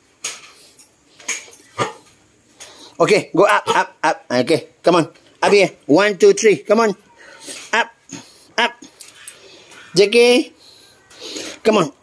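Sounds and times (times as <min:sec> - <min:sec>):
dog barking: 0:01.8 - 0:02.1, 0:03.6 - 0:03.9.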